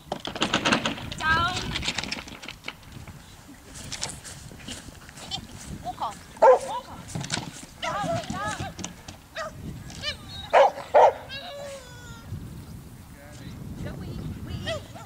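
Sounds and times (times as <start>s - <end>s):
dog barking: 6.4s - 6.8s, 9.4s - 9.6s, 10.5s - 11.4s.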